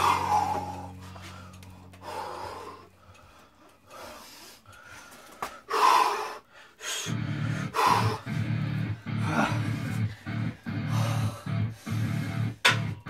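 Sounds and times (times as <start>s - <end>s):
man gasping breaths: 0.0s - 12.6s.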